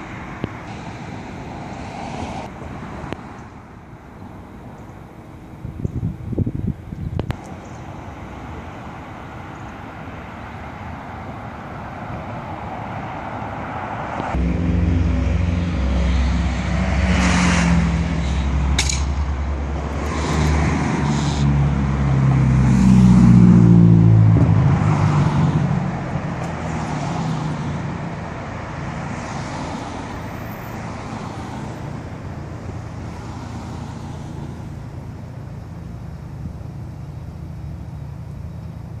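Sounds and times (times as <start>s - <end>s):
engine drone: 0.0s - 39.0s
traffic hum: 0.0s - 39.0s
vehicles passing by: 0.0s - 39.0s.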